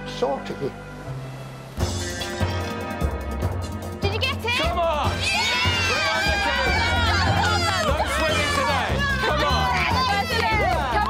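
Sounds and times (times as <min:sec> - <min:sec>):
background music with pulsing bass: 0:00.0 - 0:11.0
voices shouting: 0:04.6 - 0:11.0.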